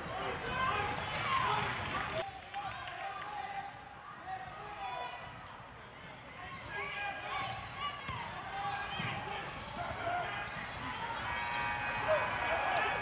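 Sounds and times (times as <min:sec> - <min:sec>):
players and spectators shouting: 0:00.0 - 0:05.2, 0:06.4 - 0:13.0.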